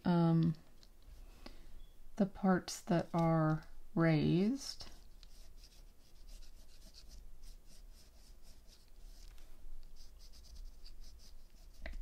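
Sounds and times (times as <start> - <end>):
pencil scratching on paper: 4.9 - 9.3, 10.0 - 11.9.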